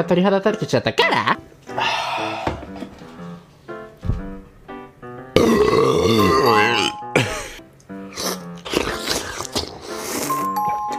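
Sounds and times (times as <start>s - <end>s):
background music: 0.0s - 10.9s.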